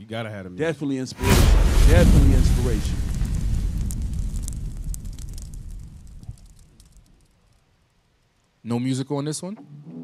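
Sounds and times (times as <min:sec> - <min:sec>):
fire rumbling and crackling: 0:01.2 - 0:07.6.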